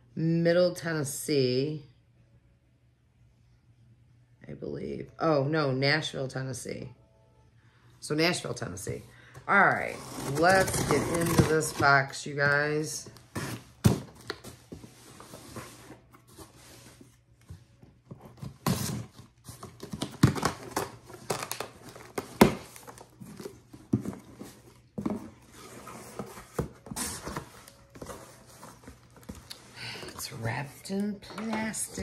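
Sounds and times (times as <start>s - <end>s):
cardboard box being opened: 9.7s - 12.0s, 18.2s - 30.3s.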